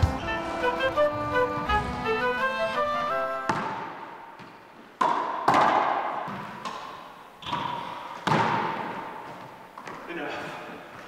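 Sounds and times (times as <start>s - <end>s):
racquetball hits echoing: 3.4s - 10.0s.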